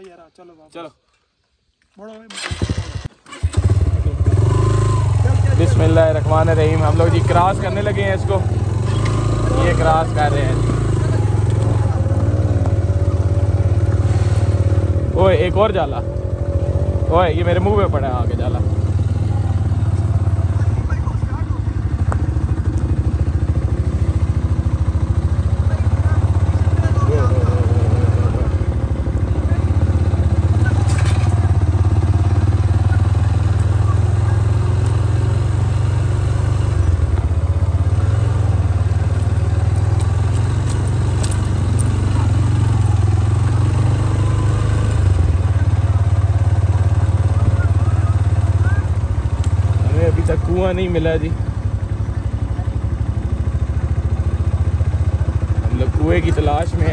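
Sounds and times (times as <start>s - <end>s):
motorcycle engine running: 2.3s - 56.9s
sharp clicks: 39.8s - 42.2s.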